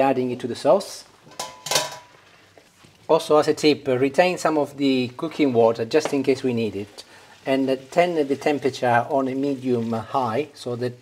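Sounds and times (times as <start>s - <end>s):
metal strainer clinking on cookware: 1.3s - 2.1s.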